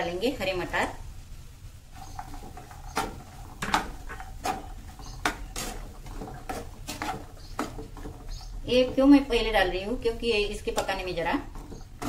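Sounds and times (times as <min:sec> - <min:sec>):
spatula scraping and tapping pan: 0:01.9 - 0:12.0.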